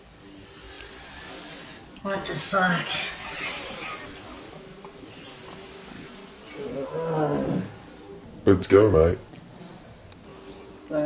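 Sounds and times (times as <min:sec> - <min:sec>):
faint steady hum: 0:00.0 - 0:11.0
low background hiss: 0:00.0 - 0:11.0.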